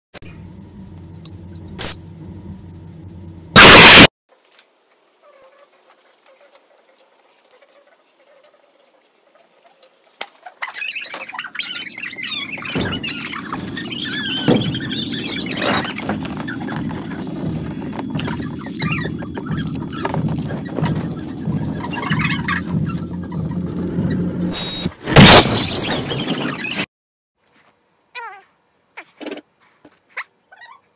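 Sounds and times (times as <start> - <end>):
low steady rumble: 0.2 - 3.6.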